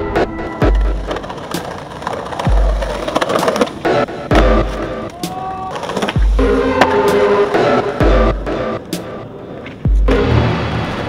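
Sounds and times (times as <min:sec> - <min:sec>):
skateboard rolling on asphalt: 0:00.2 - 0:08.2
music with deep bass: 0:06.2 - 0:11.0.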